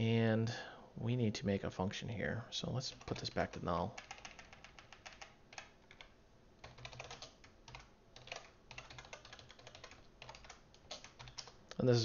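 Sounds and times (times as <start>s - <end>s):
faint keyboard typing: 2.8s - 11.9s.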